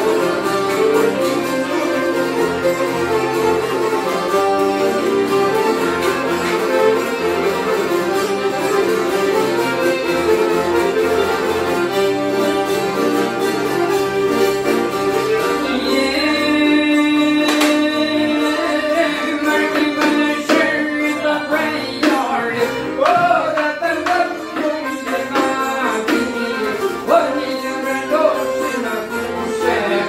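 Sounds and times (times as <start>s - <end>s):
accordion: 0.0s - 30.0s
long-necked lute: 0.0s - 30.0s
violin: 0.0s - 30.0s.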